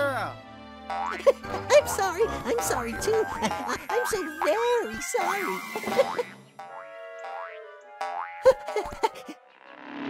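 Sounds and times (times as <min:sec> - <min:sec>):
springy boing rising in pitch: 0:06.0 - 0:08.8.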